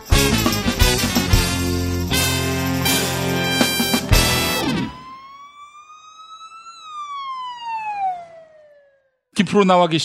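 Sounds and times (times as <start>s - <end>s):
siren-like wail: 2.2s - 9.3s.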